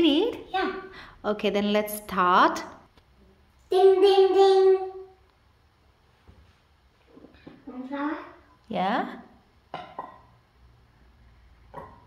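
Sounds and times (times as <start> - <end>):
metal cup clinking on glass bowl: 9.8 - 10.3.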